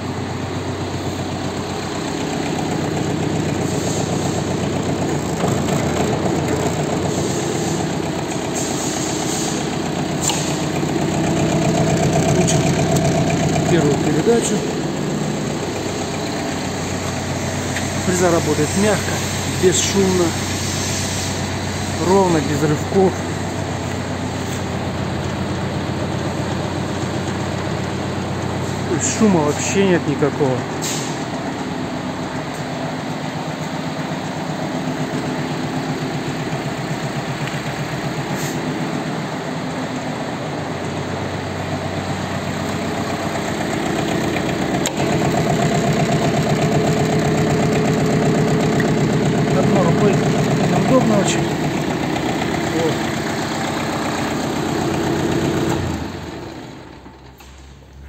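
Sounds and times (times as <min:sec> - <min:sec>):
tractor diesel engine running: 0:00.0 - 0:58.0
rotary tiller turning: 0:10.2 - 0:15.1, 0:43.2 - 0:56.4.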